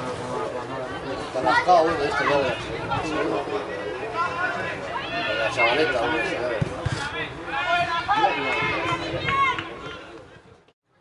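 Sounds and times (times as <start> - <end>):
people talking and calling out: 0.0 - 10.7.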